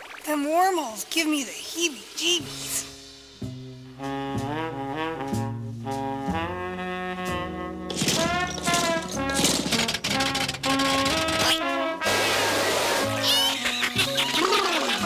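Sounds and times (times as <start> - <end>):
jaunty brass and saxophone melody: 3.5 - 14.0.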